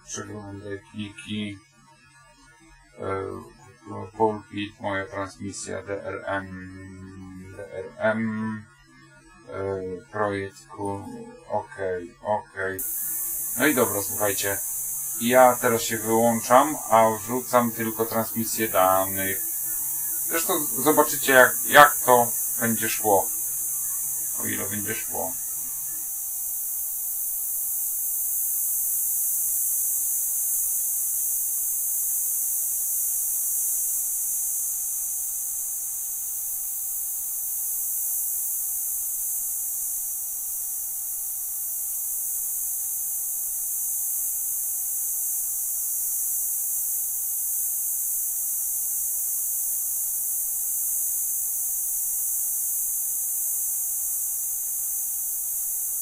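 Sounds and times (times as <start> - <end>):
dense digital radio hiss: 0.0 - 1.6, 2.9 - 8.7, 9.4 - 56.0
thin mid-pitched tone: 12.8 - 25.7.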